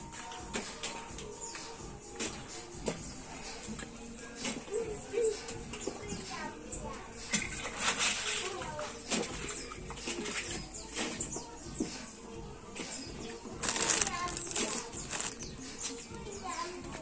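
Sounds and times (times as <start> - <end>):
indistinct background voices: 0.1 - 17.0
rustling noise: 13.5 - 16.6.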